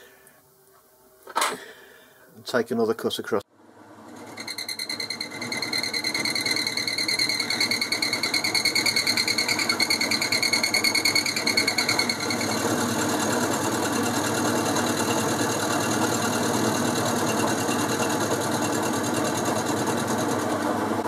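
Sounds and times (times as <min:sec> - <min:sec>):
lathe milling metal: 0:04.2 - 0:21.0.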